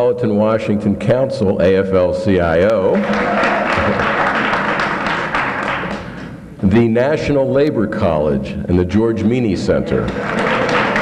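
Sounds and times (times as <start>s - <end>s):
audience applauding: 2.9s - 6.3s, 10.1s - 11.0s.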